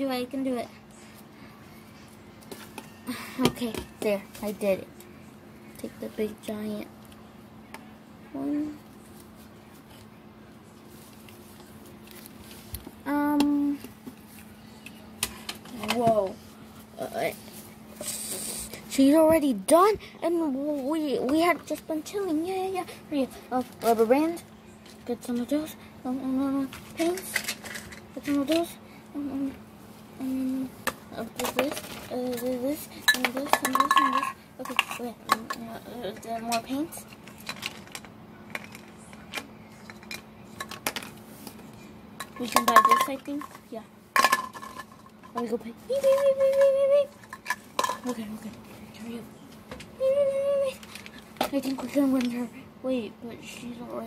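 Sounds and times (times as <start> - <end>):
faint low hum: 0.0 - 54.0
child singing a steady note: 13.0 - 13.9, 18.2 - 27.4, 28.1 - 29.6, 30.2 - 37.0, 45.5 - 47.2, 50.0 - 50.8.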